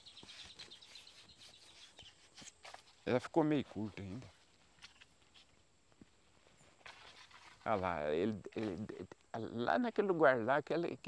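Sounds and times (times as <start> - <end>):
bird chirp: 0.0 - 2.9
faint riverside ambience: 0.0 - 11.0.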